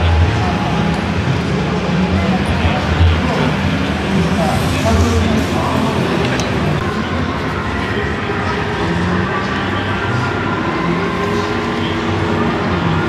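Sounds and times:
crowd voices in echoing hall: 0.0s - 13.0s.

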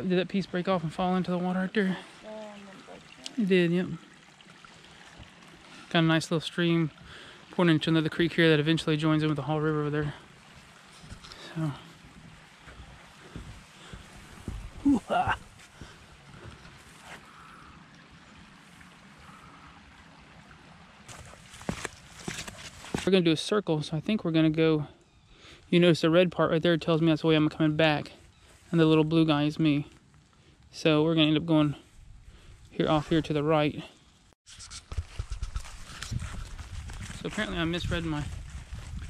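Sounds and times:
creek trickling over rocks: 0.0s - 39.0s
small stream running: 0.0s - 39.0s
footsteps: 10.0s - 17.3s, 21.1s - 23.1s, 34.5s - 39.0s.

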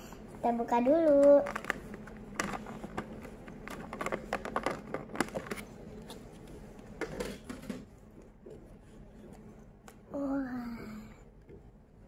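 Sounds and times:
plastic box crackling open: 1.4s - 5.6s.

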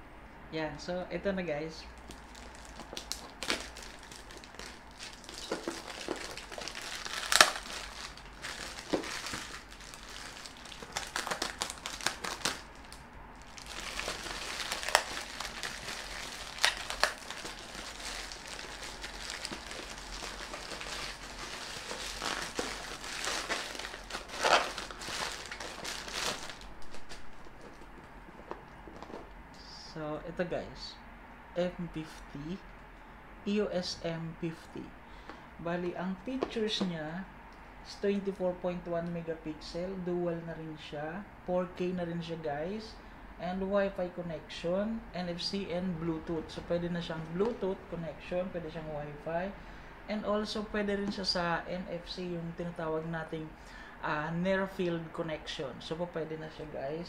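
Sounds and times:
packing tape snapping: 2.0s - 27.3s
plastic pouch crinkling: 2.0s - 28.1s.

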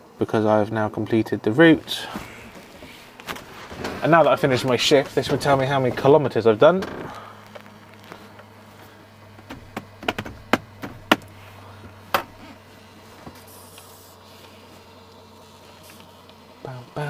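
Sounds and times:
printer humming: 0.0s - 17.0s.

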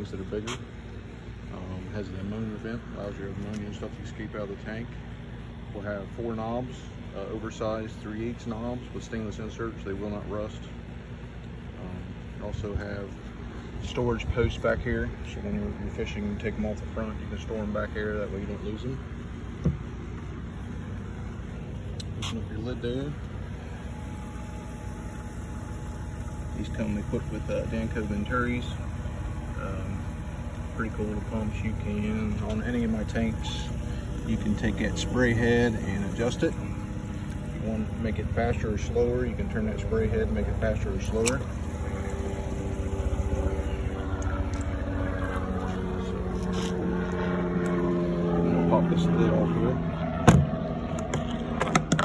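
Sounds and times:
pump spraying water into tank: 19.2s - 47.8s.

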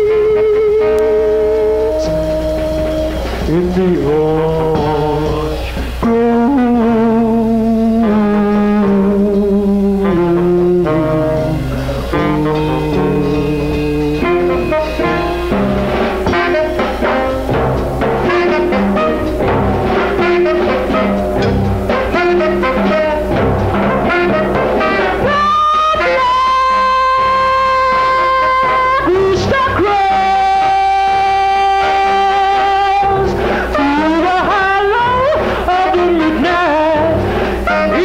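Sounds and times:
live band music: 0.0s - 38.0s.

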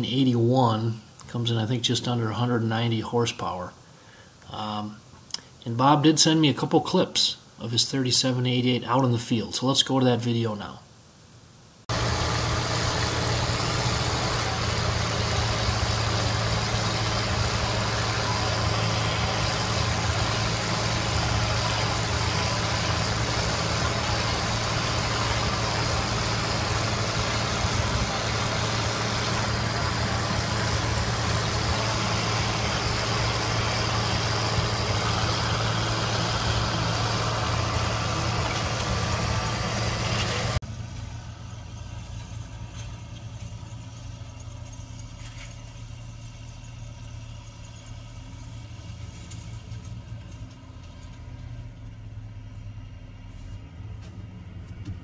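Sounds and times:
tractor diesel engine running: 11.9s - 55.0s.

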